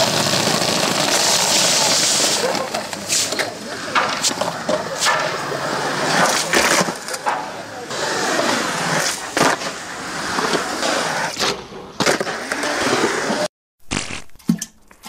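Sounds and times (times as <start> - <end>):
skateboard wheels rolling on concrete: 0.0 - 13.5.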